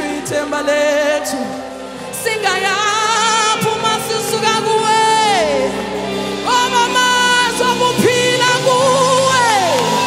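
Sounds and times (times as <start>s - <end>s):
woman singing gospel: 0.0s - 10.0s.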